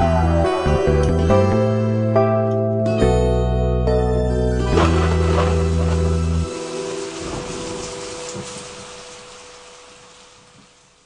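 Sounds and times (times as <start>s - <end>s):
rain sound effect: 4.7s - 11.0s.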